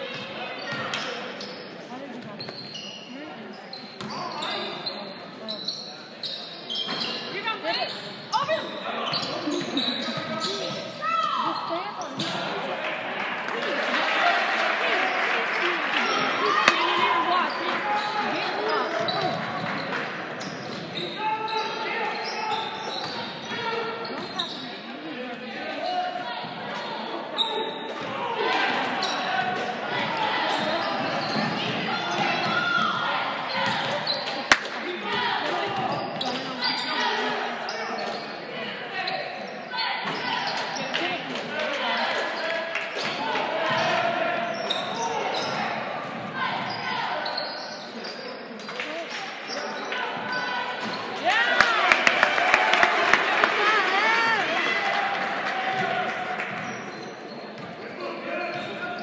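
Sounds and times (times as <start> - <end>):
echoing voices of spectators: 0.0 - 59.0.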